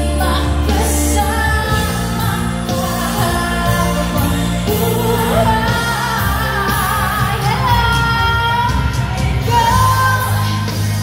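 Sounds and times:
live pop music: 0.0s - 11.0s.

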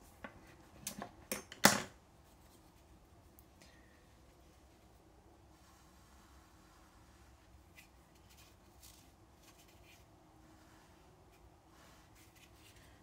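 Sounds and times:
faint scratchy brush strokes: 2.1s - 13.0s.

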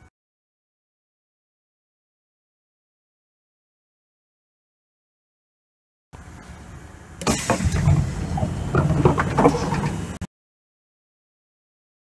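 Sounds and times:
train interior hum: 6.2s - 10.3s
loud clunks and rattles: 7.2s - 10.2s.

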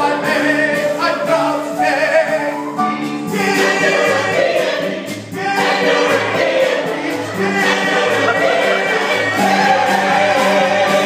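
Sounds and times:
choir singing in parts: 0.0s - 11.0s.

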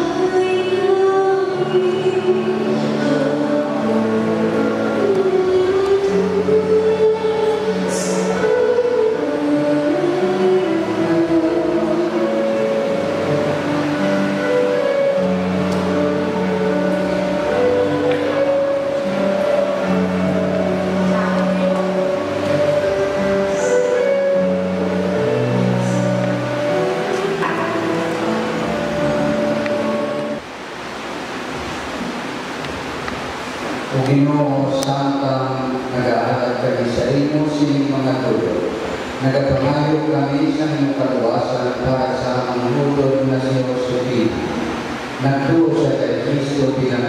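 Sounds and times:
slow held keyboard chords: 0.0s - 30.4s.

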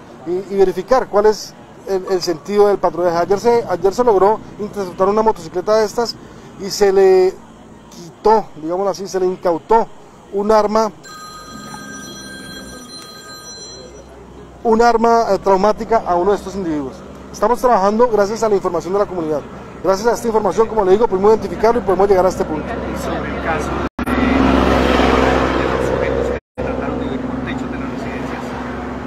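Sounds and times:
high-pitched electronic tones: 11.0s - 14.2s
vehicle passing close by: 21.2s - 29.0s.

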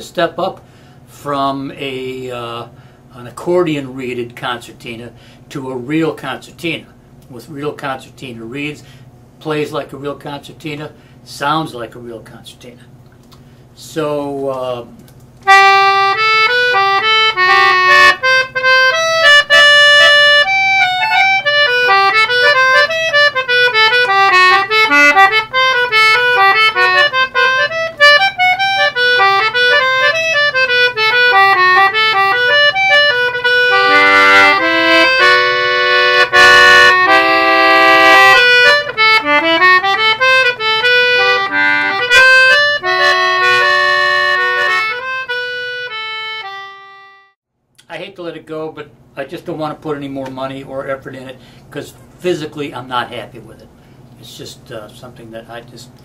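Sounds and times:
concertina playing a tune: 15.4s - 47.4s.

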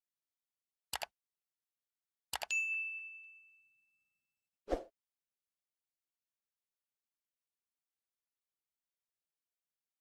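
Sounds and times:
notification bell ding: 2.5s - 3.9s.

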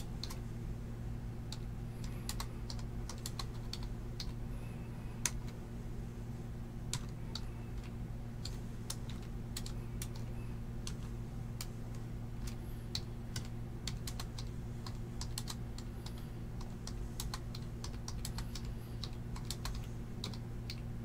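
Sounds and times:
steady low hum: 0.0s - 21.0s
keyboard typing clicks: 1.5s - 4.4s, 6.9s - 20.9s.

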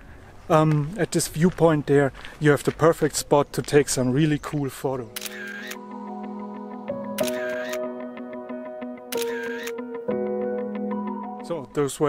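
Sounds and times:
soft background music: 4.8s - 12.0s
camera shutter clicks: 5.2s - 5.8s, 7.2s - 7.8s, 9.1s - 9.8s.

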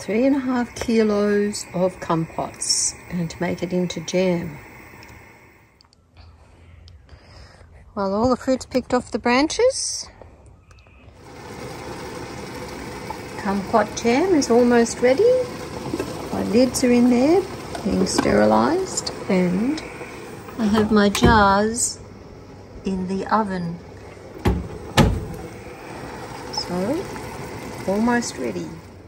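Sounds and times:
jam boiling in a pot: 0.0s - 5.8s, 11.1s - 29.0s
oven door thumps: 20.7s - 21.8s, 24.4s - 25.4s.

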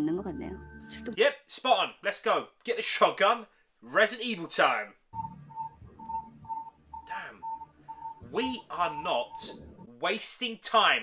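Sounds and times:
high-pitched electronic beeps: 5.2s - 9.7s.

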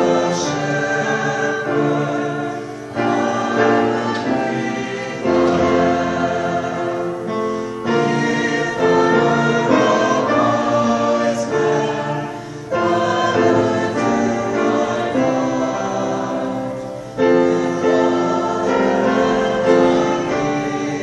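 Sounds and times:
mixed choir singing: 0.0s - 21.0s.

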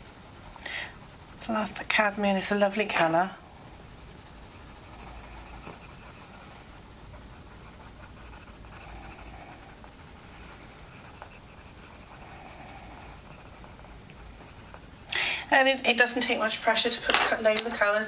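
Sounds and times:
coloured pencil scratching on paper: 0.0s - 17.0s.

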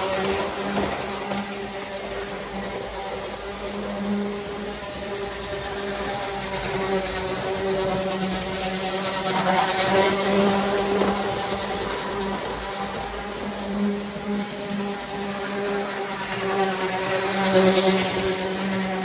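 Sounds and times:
toy train motor buzzing hum: 0.0s - 19.0s
wheels rumbling on metal track: 0.0s - 19.0s.

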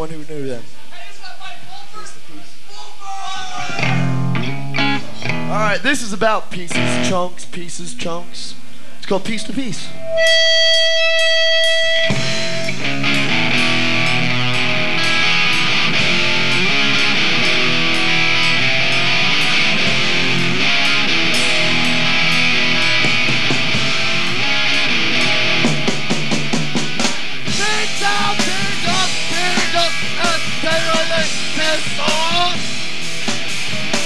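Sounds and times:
drums: 0.0s - 34.0s
distorted guitars: 3.5s - 34.0s
held electric guitar tone: 3.7s - 5.6s, 9.4s - 34.0s
cymbals: 9.4s - 14.7s.

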